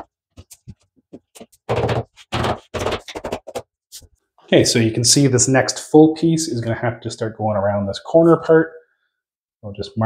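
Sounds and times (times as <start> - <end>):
floor planks knocking and clicking: 0.0 - 3.8.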